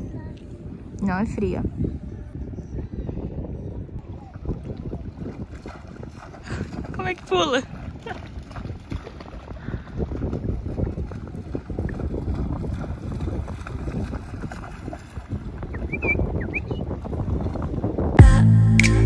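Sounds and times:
wind buffeting microphone: 0.0 - 18.2
sea water splashing and sloshing: 4.1 - 16.1.

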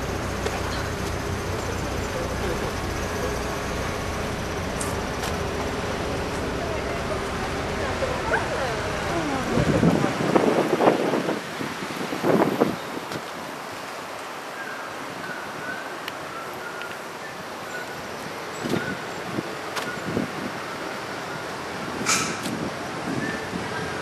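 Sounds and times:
passing traffic hiss: 0.0 - 24.0
wind on microphone: 8.9 - 13.6, 18.0 - 20.7, 21.4 - 24.0.

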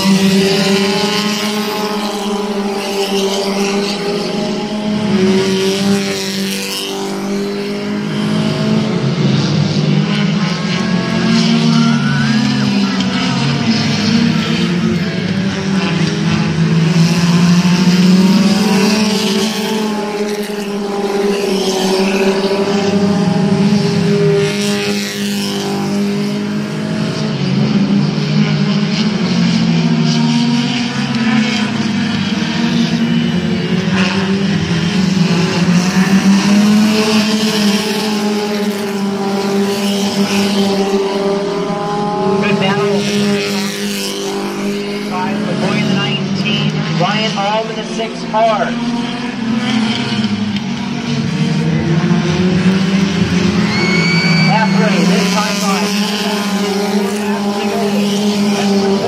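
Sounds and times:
race car engines: 0.0 - 59.0.

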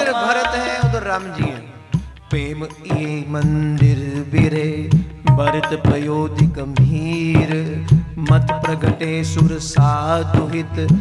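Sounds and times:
man singing a devotional chant: 0.0 - 11.0
light tabla strokes: 0.4 - 11.0.

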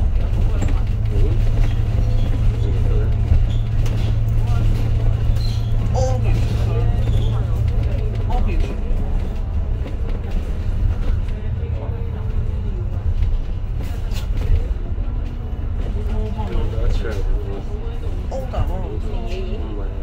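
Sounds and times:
bus engine drumming: 0.0 - 20.0
indistinct voices: 0.0 - 20.0
road noise: 0.0 - 20.0.

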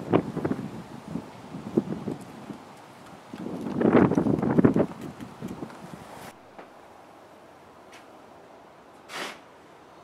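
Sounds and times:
wind buffeting microphone: 0.0 - 6.3.

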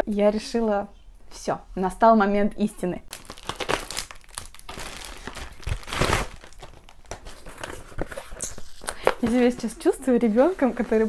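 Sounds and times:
packaging crinkling and rustling: 3.1 - 11.0.

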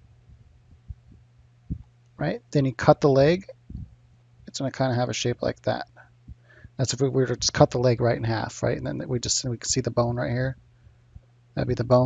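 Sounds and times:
soft low thumps: 0.0 - 2.0, 3.5 - 4.5
steady low hum: 0.0 - 12.0.

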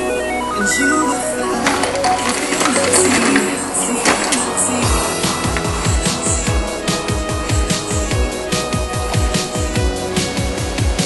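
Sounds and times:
electronic soundtrack music: 0.0 - 11.0.

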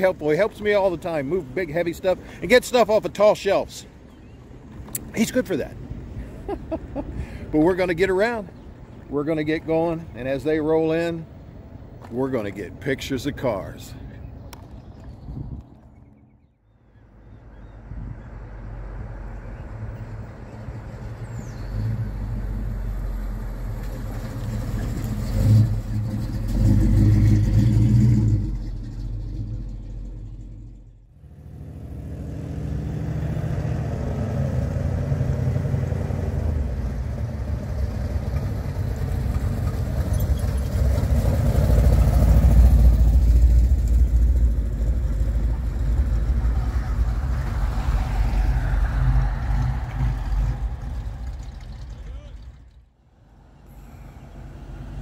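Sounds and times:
car engines rumbling past: 0.0 - 55.0.

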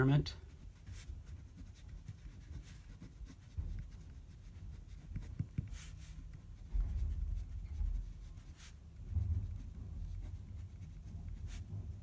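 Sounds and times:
pen writing on paper: 0.5 - 11.7.

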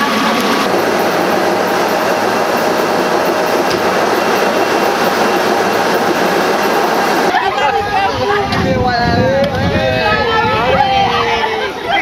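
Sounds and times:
clattering machinery: 0.0 - 7.4.

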